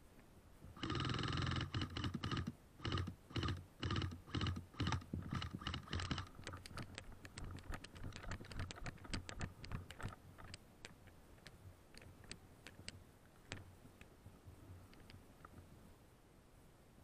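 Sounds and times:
camera and gear rustling: 1.6s - 13.7s.

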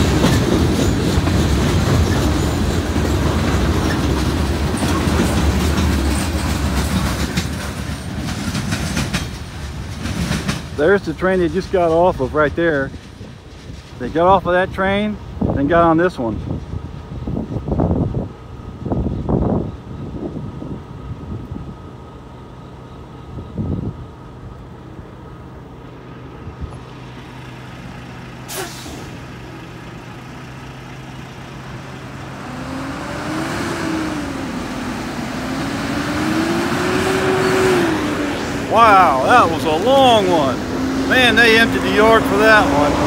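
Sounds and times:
diesel truck engines idling: 0.0s - 43.0s
truck accelerating through gears: 16.8s - 43.0s
air brake hiss: 28.5s - 29.2s.

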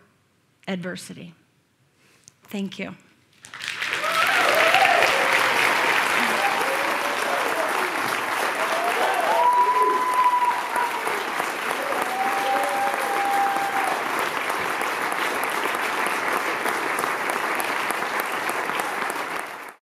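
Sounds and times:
audience applauding: 3.4s - 19.8s
audience cheering: 3.7s - 19.8s.

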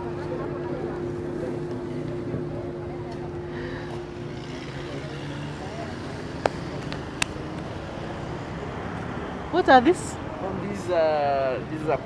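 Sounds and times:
low engine hum: 0.0s - 10.6s
faint background chatter: 0.0s - 12.0s.

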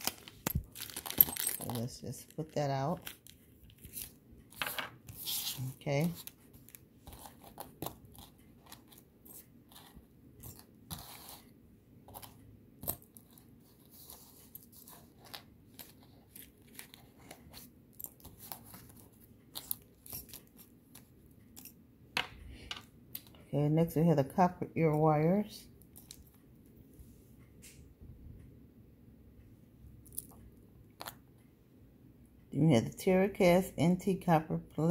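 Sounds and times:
plastic bag crinkling: 0.0s - 2.4s.

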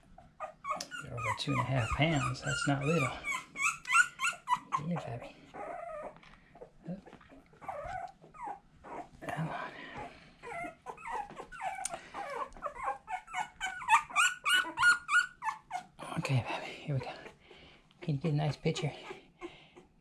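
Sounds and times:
puppies whining and squeaking: 0.0s - 16.0s, 17.0s - 20.0s.

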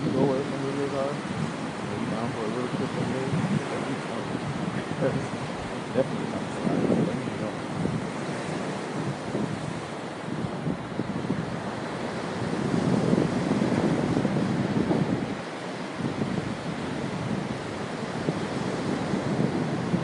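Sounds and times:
surf washing onto rocky shore: 0.0s - 20.0s
wind buffeting microphone: 0.0s - 20.0s.

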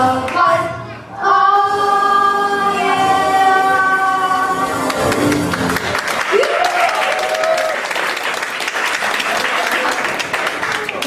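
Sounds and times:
children's chorus singing: 0.0s - 5.3s.

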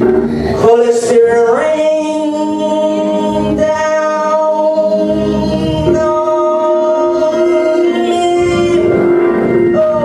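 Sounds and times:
man singing into microphone: 0.0s - 10.0s
organ chord: 0.0s - 10.0s.

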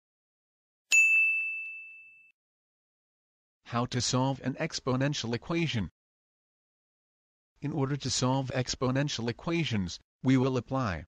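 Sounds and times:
high bell-like ding: 0.9s - 2.4s.

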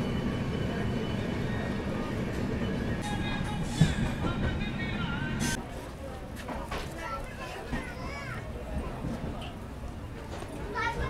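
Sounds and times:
train wheels rumbling on rails: 0.0s - 5.6s
music: 3.0s - 5.6s.

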